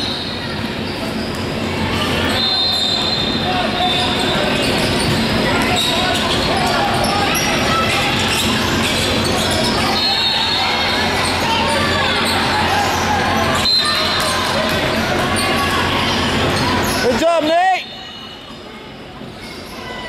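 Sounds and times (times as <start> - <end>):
sneakers squeaking on floor: 0.0 - 17.2
crowd and player voices echoing: 0.0 - 20.0.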